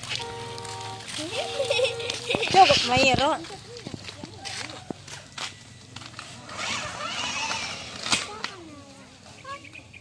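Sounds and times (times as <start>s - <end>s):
footsteps scuffing on gritty pavement: 0.0s - 6.5s.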